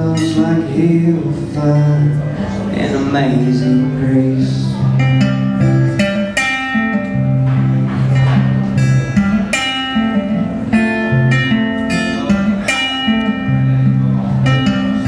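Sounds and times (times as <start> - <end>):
solo acoustic guitar: 0.0 - 15.0.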